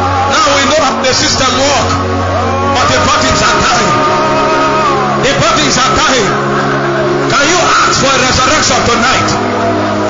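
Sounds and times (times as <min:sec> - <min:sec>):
congregation praying aloud: 0:00.0 - 0:10.0
held chords of background music: 0:00.0 - 0:10.0.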